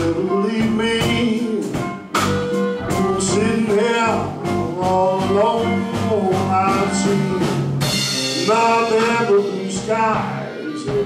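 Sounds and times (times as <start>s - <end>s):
amplified harmonica: 0.0s - 11.0s
blues band playing: 0.0s - 11.0s.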